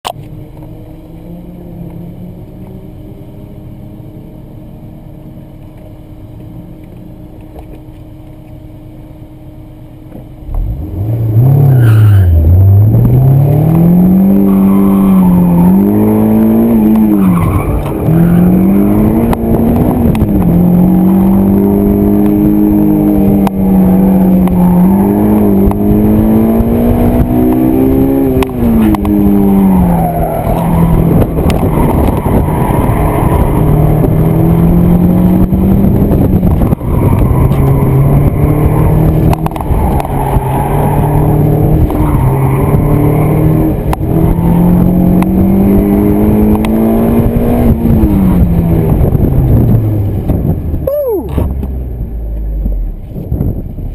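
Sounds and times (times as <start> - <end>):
car engine revving hard: 10.5 - 50.5.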